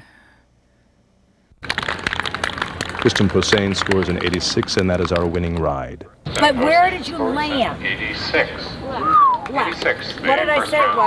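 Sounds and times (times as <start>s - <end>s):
crackling of small knocks and clicks: 1.6s - 5.7s.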